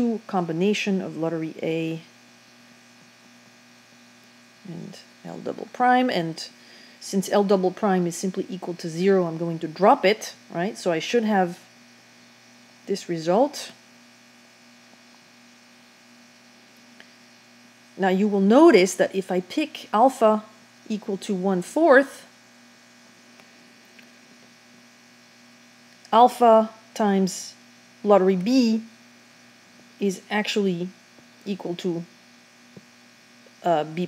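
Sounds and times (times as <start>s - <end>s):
faint electrical hum with buzz: 0.0s - 34.0s.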